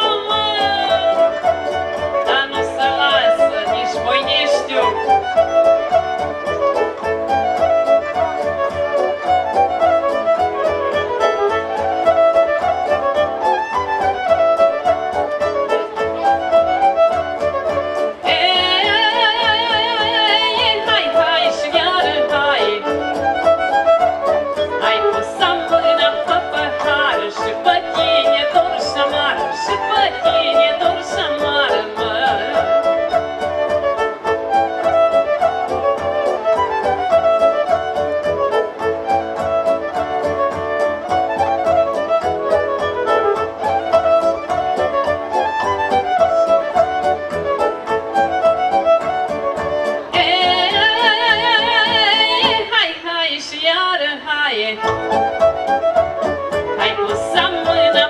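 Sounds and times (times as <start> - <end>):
woman singing: 0.0 - 6.0, 18.1 - 23.3, 24.5 - 33.5, 50.1 - 55.8, 56.6 - 58.0
keyboard: 0.0 - 52.8
violin lead: 0.0 - 58.0.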